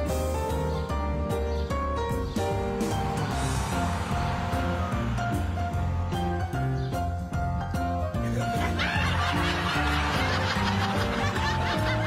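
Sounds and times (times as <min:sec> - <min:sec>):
background music with low beat: 0:00.0 - 0:12.0
crowd laughing: 0:08.2 - 0:12.0.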